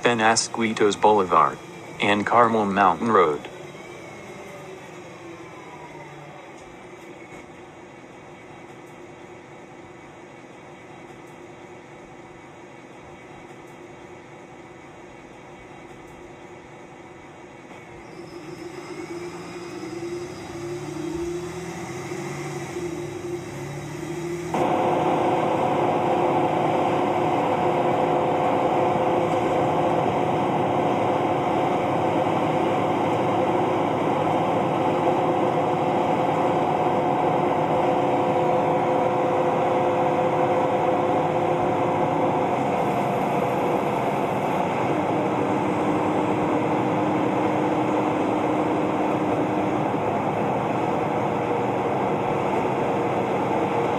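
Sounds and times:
bus engine drone with whine: 0:00.0 - 0:53.9.

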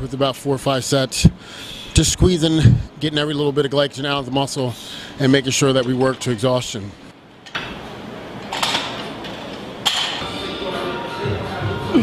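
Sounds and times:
noisy room background: 0:00.0 - 0:12.0
faint music tones: 0:09.1 - 0:12.0.

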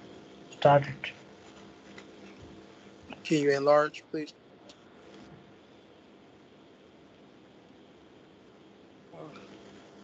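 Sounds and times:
faint background noise on a call: 0:00.0 - 0:10.0
low steady hum: 0:00.0 - 0:10.0.

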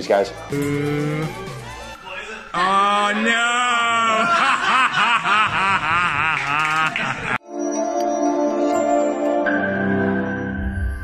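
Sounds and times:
man laughing: 0:03.8 - 0:07.4.

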